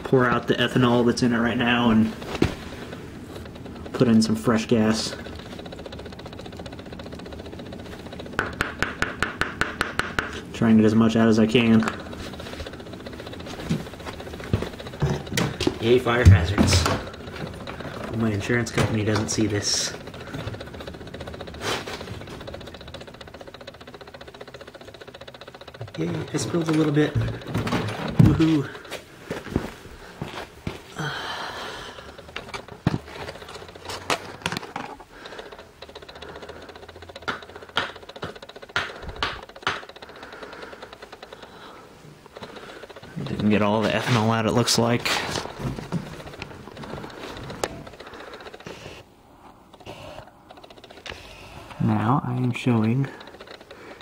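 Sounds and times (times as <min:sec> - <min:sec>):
handling clicks and knocks: 0:00.2 - 0:30.9, 0:32.0 - 0:41.5, 0:42.2 - 0:49.0.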